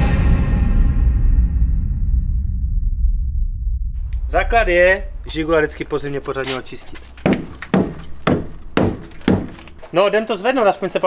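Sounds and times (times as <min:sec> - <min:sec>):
knocks on car wheel arch: 0:07.3 - 0:09.7.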